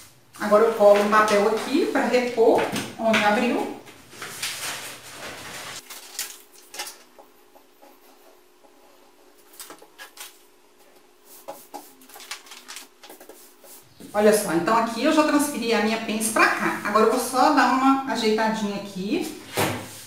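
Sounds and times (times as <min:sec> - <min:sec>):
paper rustling and crinkling: 0:04.1 - 0:07.1, 0:09.4 - 0:10.5, 0:11.4 - 0:13.8.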